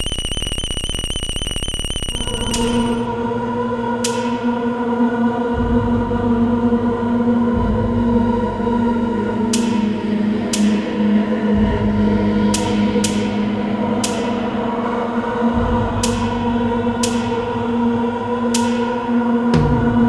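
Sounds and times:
electronic drone of held tones: 0:00.0 - 0:03.1
sharp bright ringing clicks: 0:00.0 - 0:03.1.

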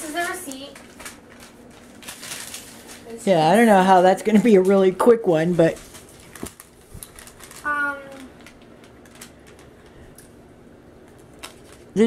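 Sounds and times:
paper receipt rustling: 0:00.0 - 0:03.8, 0:04.4 - 0:10.0, 0:11.2 - 0:12.0.

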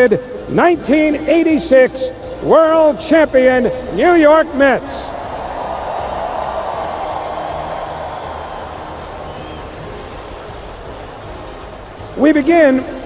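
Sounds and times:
music playing: 0:00.0 - 0:13.0
stadium crowd cheering: 0:02.5 - 0:13.0.

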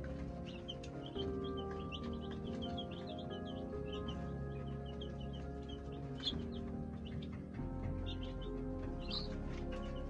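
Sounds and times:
baby chicks peeping: 0:00.0 - 0:10.0
background music: 0:00.0 - 0:10.0.

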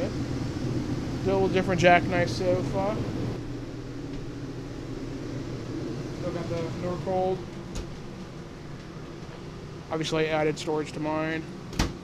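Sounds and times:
low background rumble and hiss: 0:00.0 - 0:12.0.

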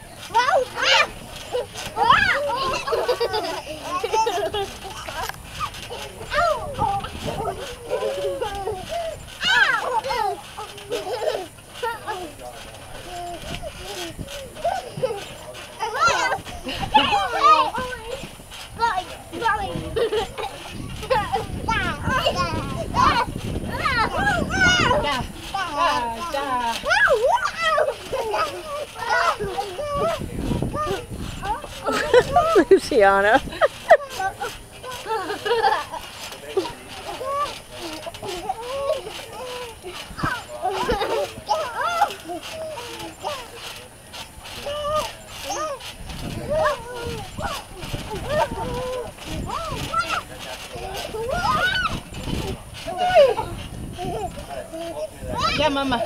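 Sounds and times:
children squealing and shouting: 0:00.3 - 0:04.4, 0:05.0 - 0:12.2, 0:20.6 - 0:32.7, 0:37.1 - 0:43.6, 0:44.6 - 0:55.7.

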